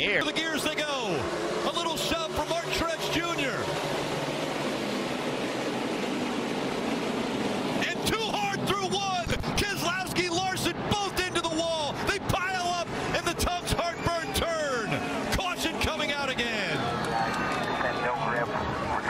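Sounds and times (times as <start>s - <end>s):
excited commentary voices: 0.0s - 3.8s, 7.8s - 19.0s
race cars accelerating at full throttle: 0.0s - 19.0s.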